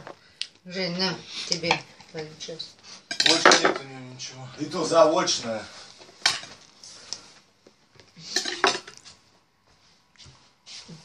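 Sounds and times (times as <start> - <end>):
tableware clinking and knocking: 3.1 - 3.9, 6.2 - 6.6, 8.3 - 9.0.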